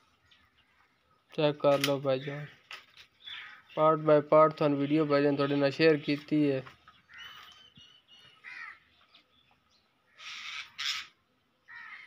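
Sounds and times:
crow cawing: 0:03.2 - 0:03.8, 0:08.4 - 0:08.9, 0:10.1 - 0:12.0.

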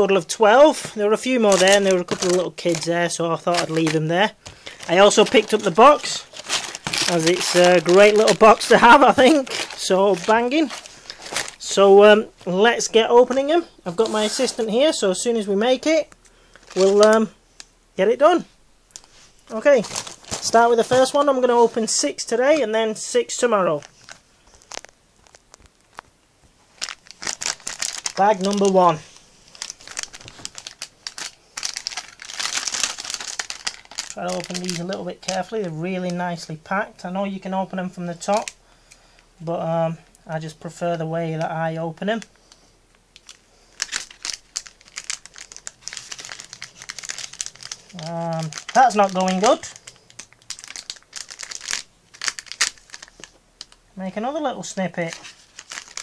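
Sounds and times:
packet crinkling: 0:00.0 - 0:17.7, 0:18.9 - 0:36.2, 0:38.2 - 0:39.2, 0:42.0 - 0:53.8, 0:54.6 - 0:56.0
packet rustling: 0:00.0 - 0:36.4, 0:38.2 - 0:39.3, 0:41.5 - 0:53.8, 0:54.4 - 0:56.0.

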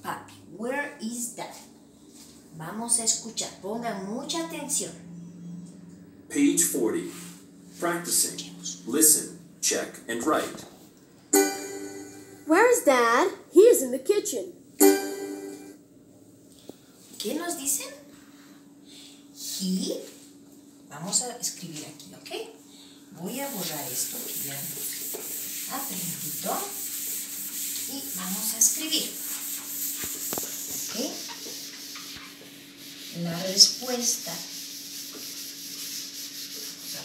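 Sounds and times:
steady low hum: 0:00.0 - 0:13.6
rubbing on whiteboard: 0:23.2 - 0:37.0.

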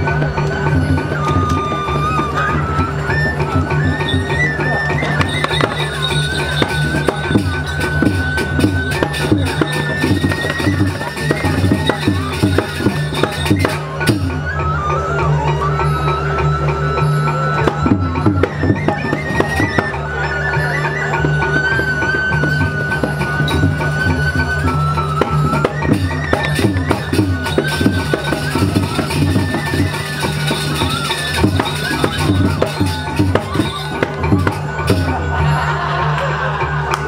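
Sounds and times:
gamelan melody: 0:00.0 - 0:37.0.

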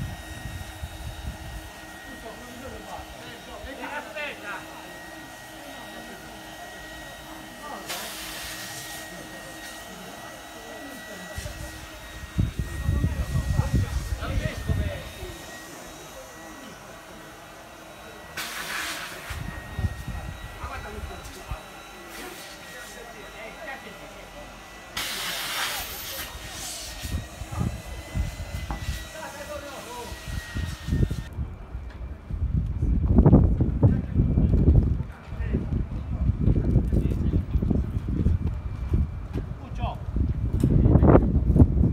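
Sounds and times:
wind buffeting microphone: 0:00.0 - 0:01.8, 0:11.5 - 0:15.4, 0:19.3 - 0:21.3, 0:26.9 - 0:29.1, 0:30.1 - 0:41.9
short bursts of hiss: 0:07.9 - 0:09.0, 0:18.4 - 0:19.4, 0:25.0 - 0:27.1.

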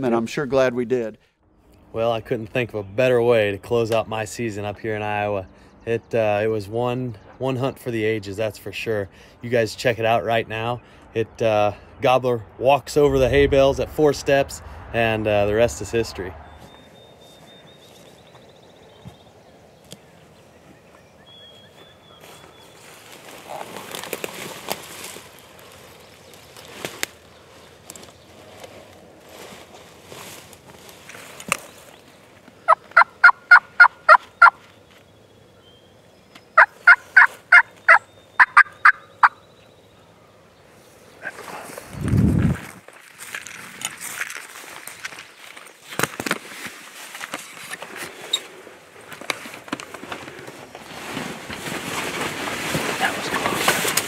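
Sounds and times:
short low rumble: 0:12.9 - 0:16.9
turkey yelping: 0:32.7 - 0:34.6, 0:36.6 - 0:39.4.

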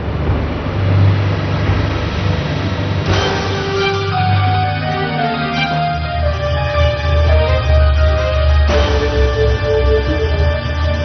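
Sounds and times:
closing theme music: 0:00.0 - 0:11.0
deep rumble: 0:00.0 - 0:11.0
rushing noise: 0:00.0 - 0:11.0.

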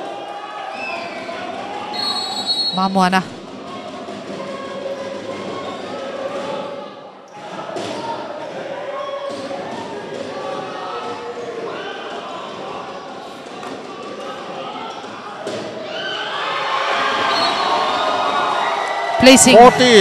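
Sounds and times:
crowd hubbub echoing: 0:00.0 - 0:20.0.

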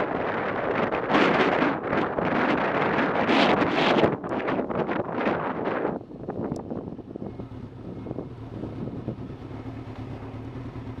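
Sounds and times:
wind buffeting microphone: 0:00.0 - 0:09.6.

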